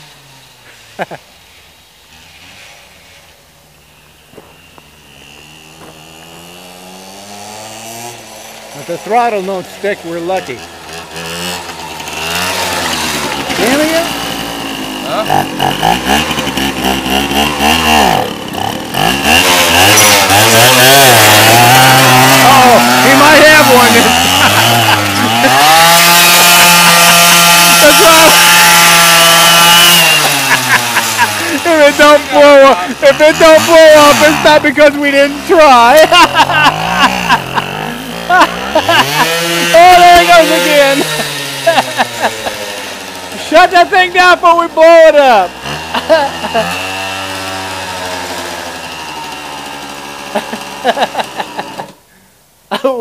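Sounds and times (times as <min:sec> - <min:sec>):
moped engine buzzing and revving: 0:00.0 - 0:52.3
man laughing: 0:00.7 - 0:01.3, 0:15.1 - 0:42.9, 0:43.6 - 0:47.0, 0:50.2 - 0:52.0, 0:52.7 - 0:53.0.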